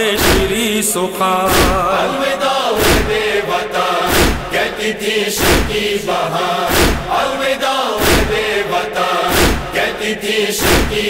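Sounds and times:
heavy rhythmic thumps: 0.0s - 0.8s, 1.5s - 11.0s
voices chanting a lament: 0.0s - 11.0s.

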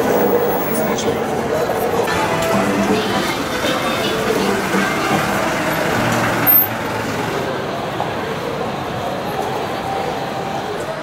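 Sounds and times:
large vehicle engine running: 0.0s - 11.0s
street noise: 0.0s - 11.0s.

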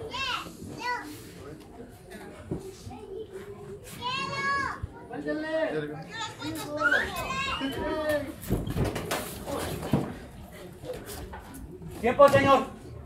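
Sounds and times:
children shouting: 6.3s - 8.2s.

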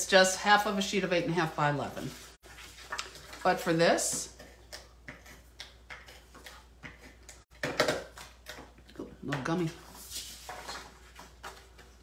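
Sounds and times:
paper rustling and sliding: 9.8s - 11.8s.

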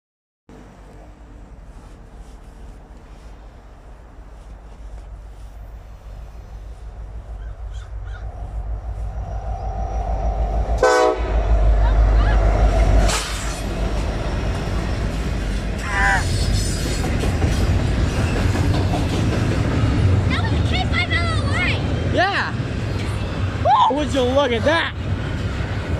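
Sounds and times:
diesel locomotive engine rumble: 0.5s - 25.9s
rolling clatter of rail cars: 0.5s - 25.9s.

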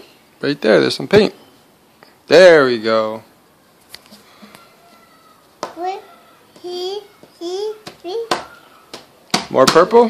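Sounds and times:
toddler vocal sounds: 4.2s - 9.0s
hand slapping paper on table: 7.8s - 9.9s.

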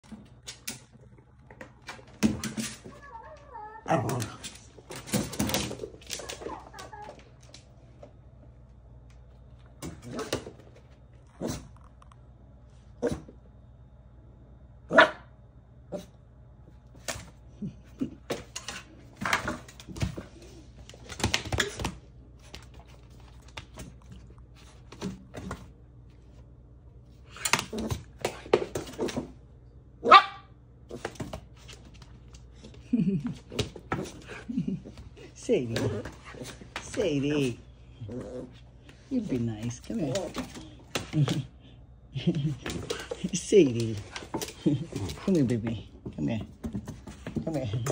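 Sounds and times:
dog whining: 6.2s - 7.3s
dog barking: 14.9s - 15.3s, 30.0s - 30.5s.

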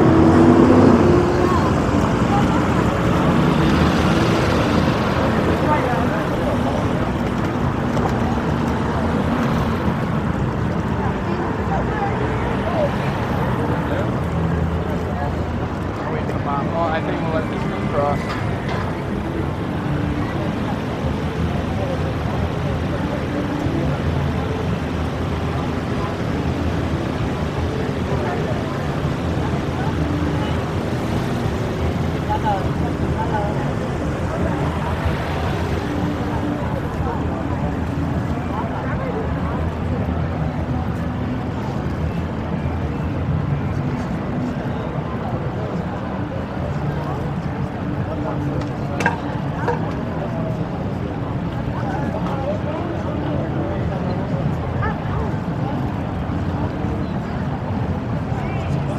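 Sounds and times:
pedestrians' voices: 0.0s - 58.9s
traffic noise: 0.0s - 58.9s.

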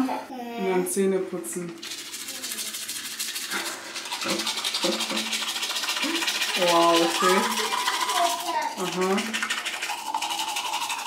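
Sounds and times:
toothbrush scrubbing teeth: 1.5s - 11.0s.

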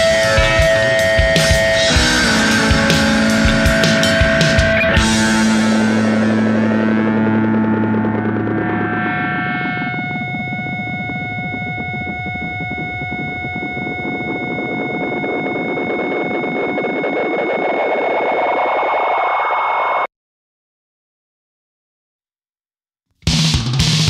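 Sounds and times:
electric guitar chord ringing: 0.0s - 18.2s
amplifier feedback tones: 0.0s - 20.1s.

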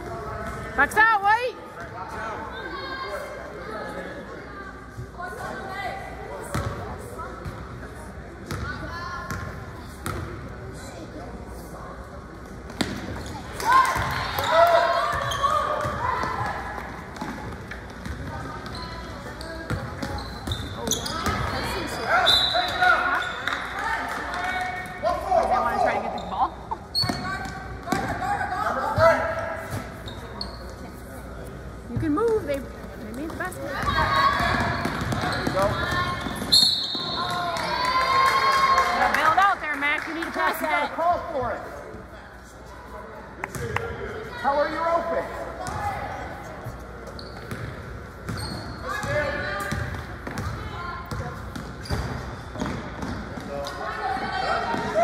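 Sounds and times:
people shouting in echoing gym: 13.4s - 17.5s, 20.7s - 26.1s, 27.0s - 29.7s, 33.6s - 39.2s, 43.9s - 46.6s, 48.7s - 51.5s, 53.5s - 55.0s.

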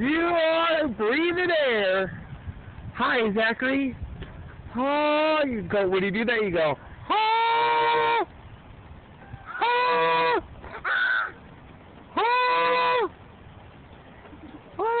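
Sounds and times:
playground swing squeaking: 7.2s - 15.0s.

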